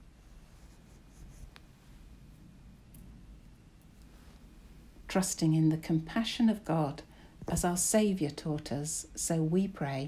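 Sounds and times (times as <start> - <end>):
soft rustles: 0.0 - 5.1
steady low hum: 0.0 - 10.0.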